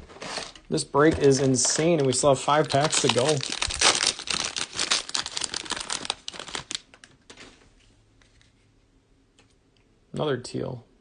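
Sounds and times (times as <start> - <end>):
plastic wrapper crinkling: 0.2 - 7.6.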